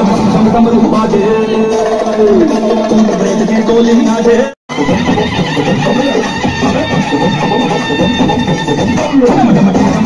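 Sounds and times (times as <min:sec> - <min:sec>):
loud music from sound system: 0:00.0 - 0:10.0.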